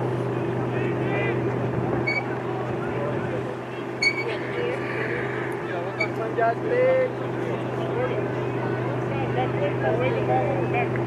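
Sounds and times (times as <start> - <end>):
low mechanical hum: 0.0 - 11.0
distant shouts of players: 3.7 - 8.9.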